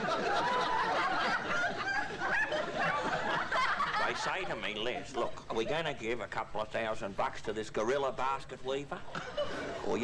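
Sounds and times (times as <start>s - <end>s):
people laughing: 0.0s - 5.7s, 8.8s - 10.0s.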